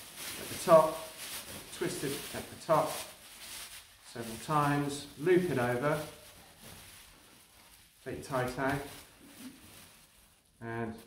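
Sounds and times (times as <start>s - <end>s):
plastic bag crinkling and rustling: 0.0s - 11.0s.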